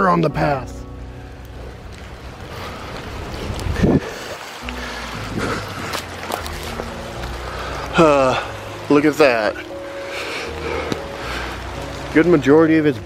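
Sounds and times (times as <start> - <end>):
soft music of held chords: 0.0 - 3.7, 4.6 - 13.0
stream of running water: 0.0 - 13.0.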